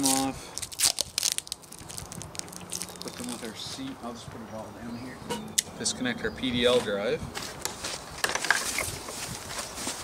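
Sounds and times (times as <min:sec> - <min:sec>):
plastic wrap crinkling: 0:00.0 - 0:03.5.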